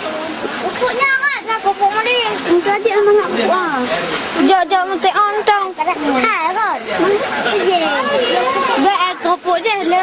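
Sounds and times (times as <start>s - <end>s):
children talking: 0.0s - 10.0s.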